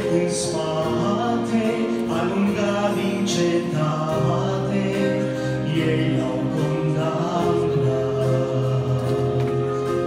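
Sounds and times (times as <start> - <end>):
man singing into microphone: 0.0 - 10.0
musical accompaniment: 0.0 - 10.0.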